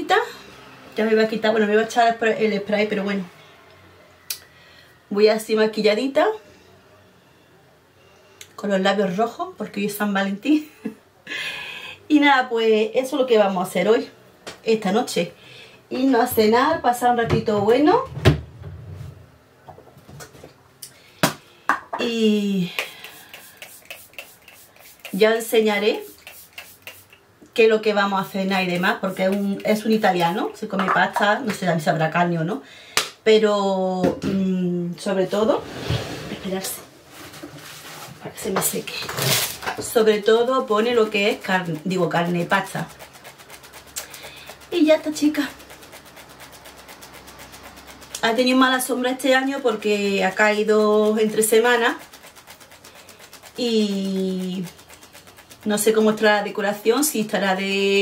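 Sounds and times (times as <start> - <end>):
drawer sliding rumble: 35.6 - 36.6.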